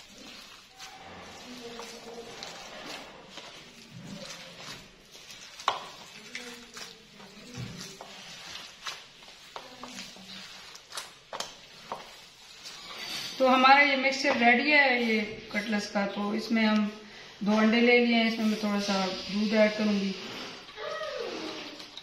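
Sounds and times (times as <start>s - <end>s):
hands squishing mash: 0.0s - 22.0s.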